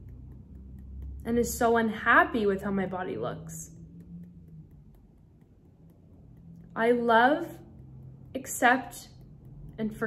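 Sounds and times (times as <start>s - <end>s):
fingertip taps on hand: 0.0s - 1.3s
low room hum: 0.0s - 10.0s.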